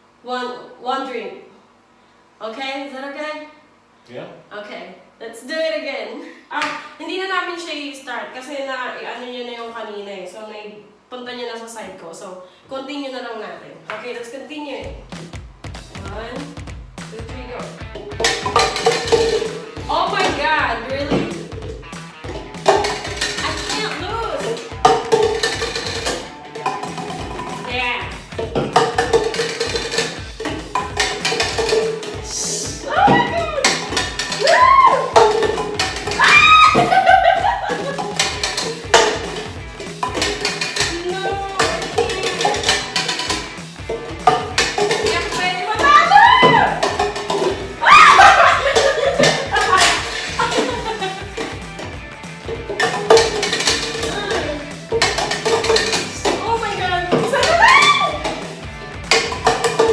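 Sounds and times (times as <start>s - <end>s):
background music: 14.7s - 59.9s
plastic cups tapping on wooden table: 18.0s - 20.4s, 21.0s - 27.7s, 28.3s - 32.3s, 33.0s - 59.9s
excited shouts and squeals: 32.7s - 35.2s, 36.0s - 37.7s, 45.2s - 46.9s, 47.6s - 50.5s, 56.4s - 58.3s.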